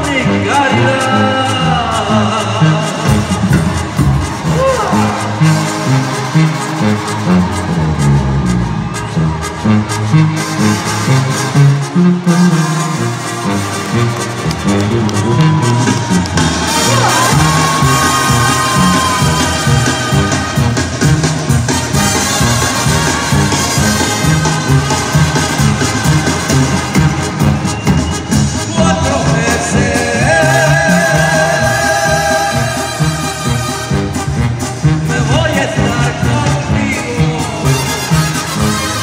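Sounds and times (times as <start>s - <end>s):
latin music over sound system: 0.0s - 39.0s.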